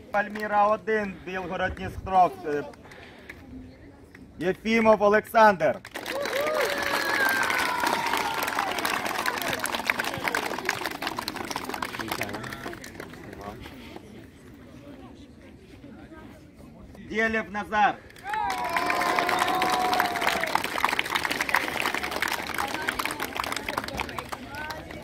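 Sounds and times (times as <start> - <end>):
crowd clapping: 5.8 - 13.9, 18.1 - 25.0.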